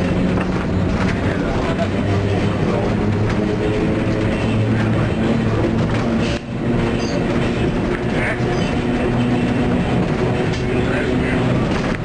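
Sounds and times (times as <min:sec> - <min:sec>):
electric tram hum: 0:00.0 - 0:12.0
wheel-on-rail noise: 0:00.0 - 0:12.0.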